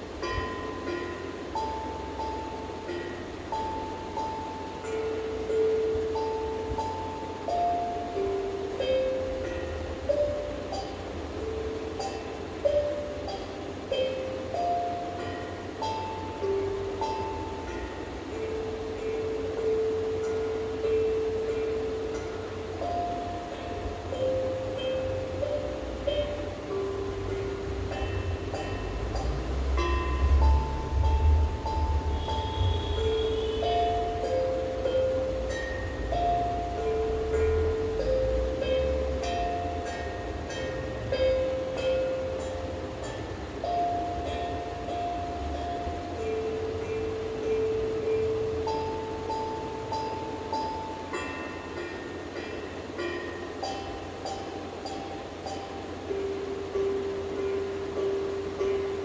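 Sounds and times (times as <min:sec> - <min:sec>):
slow melody of single clear notes: 0:00.0 - 0:59.0.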